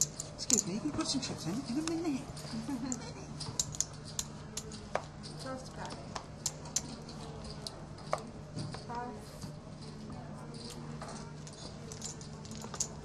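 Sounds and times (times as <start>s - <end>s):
steady low hum: 0.0s - 13.0s
poker chips clicking: 1.7s - 5.4s, 6.4s - 8.2s, 11.4s - 13.0s.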